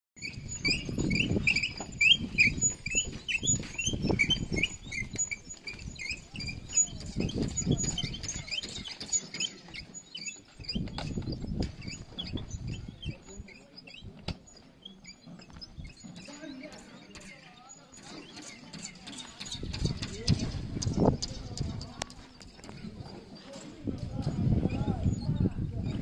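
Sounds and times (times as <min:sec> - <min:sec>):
small birds chirping: 0:00.2 - 0:26.0
low rumbling on microphone: 0:19.4 - 0:26.0.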